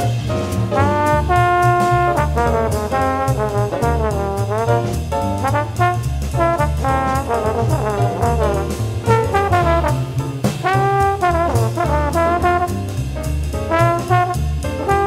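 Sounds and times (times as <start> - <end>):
bass: 0.0 - 15.0
drums with cymbal strokes: 0.0 - 15.0
jazz trombone melody: 0.0 - 15.0.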